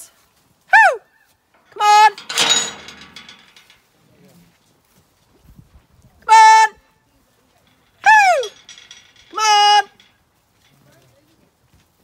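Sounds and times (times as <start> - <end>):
woman calling sheep: 0.7 - 1.1, 1.7 - 2.3, 6.2 - 8.6, 9.3 - 10.0.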